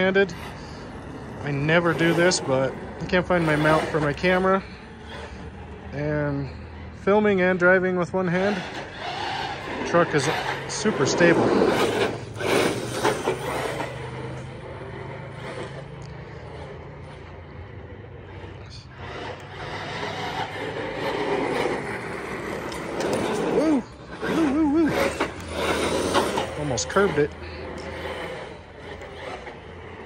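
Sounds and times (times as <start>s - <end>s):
tyre noise: 0.0s - 17.5s, 18.2s - 30.0s
electric motor whine: 0.0s - 30.0s.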